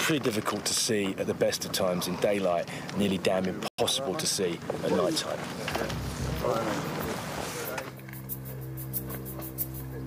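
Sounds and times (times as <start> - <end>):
low drone music: 5.8 - 10.0.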